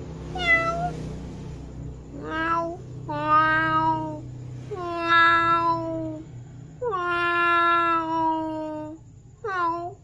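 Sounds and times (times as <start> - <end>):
cat meowing: 0.3 - 1.0, 2.1 - 6.2, 6.8 - 10.0.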